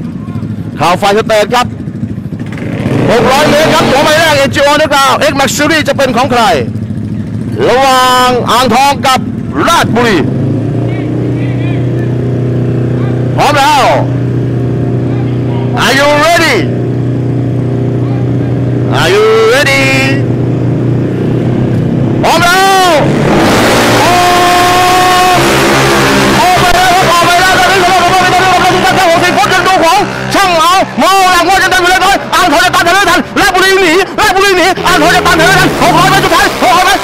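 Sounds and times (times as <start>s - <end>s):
scooter engines revving: 0.0s - 37.0s
scooters at full throttle: 0.0s - 37.0s.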